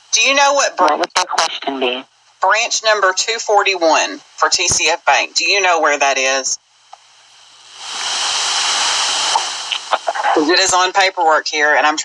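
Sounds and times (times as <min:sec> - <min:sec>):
phone line hiss: 0:07.6 - 0:12.0.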